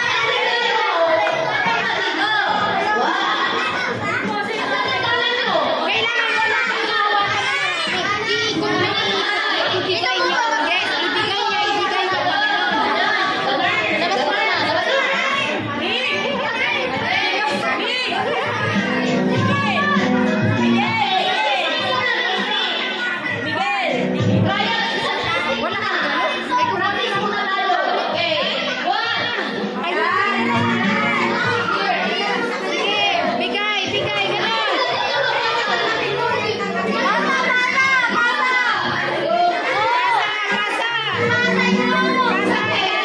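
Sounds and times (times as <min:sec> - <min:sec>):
crowd of children and adults chattering: 0:00.0 - 0:43.0.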